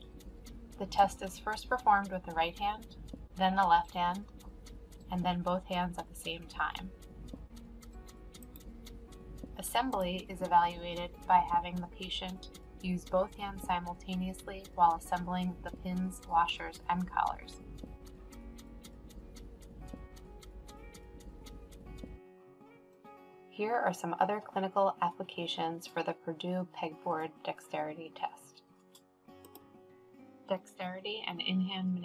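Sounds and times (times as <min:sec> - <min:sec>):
rapid clock ticking: 0:00.0 - 0:22.2
soft background music: 0:00.0 - 0:32.0.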